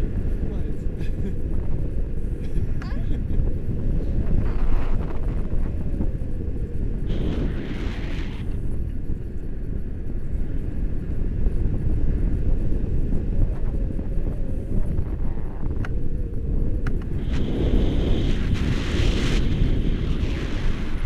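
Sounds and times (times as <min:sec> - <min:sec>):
wind buffeting microphone: 0:00.0 - 0:21.0
bright rush of air: 0:17.1 - 0:21.0.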